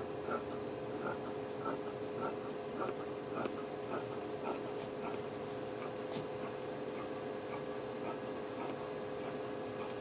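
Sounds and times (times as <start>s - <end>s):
blade cutting fabric: 0.0s - 10.0s
steady low hum: 0.0s - 10.0s.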